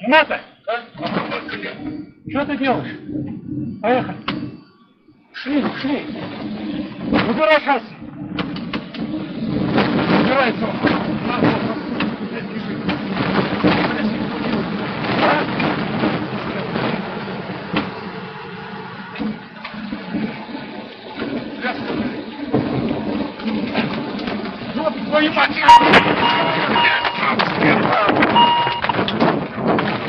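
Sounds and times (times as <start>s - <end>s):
people's voices: 0.0s - 29.2s
airliner engine drone: 0.0s - 30.0s.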